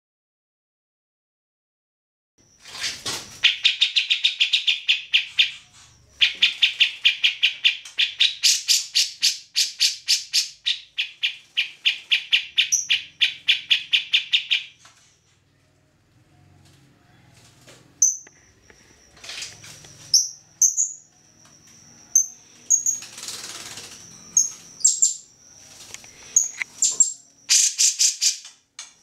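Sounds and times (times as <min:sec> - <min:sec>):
bulbul rapid chattering call: 0:26.4 - 0:28.5.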